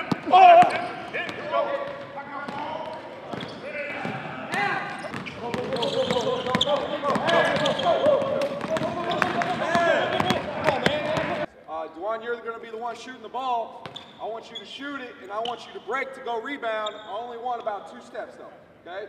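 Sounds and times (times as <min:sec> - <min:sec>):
basketballs bouncing on hardwood: 0:00.0 - 0:11.4
players shouting and chatting: 0:00.0 - 0:18.6.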